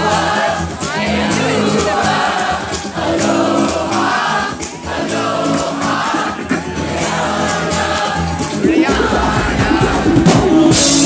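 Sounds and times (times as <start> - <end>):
bass: 0.0 - 11.0
drum beats: 0.0 - 11.0
live band playing: 0.0 - 11.0
many voices singing together: 0.0 - 11.0.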